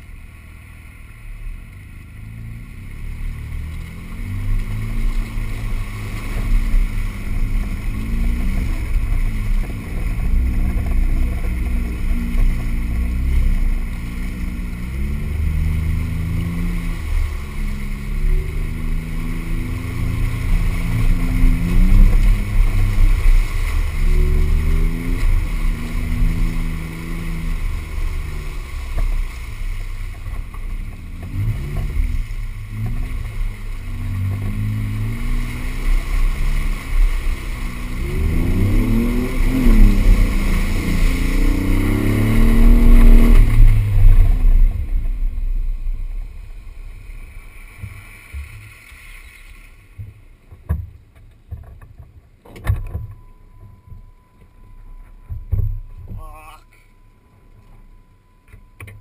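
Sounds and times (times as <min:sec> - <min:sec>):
car engine revving in mud: 0:00.0 - 0:53.0.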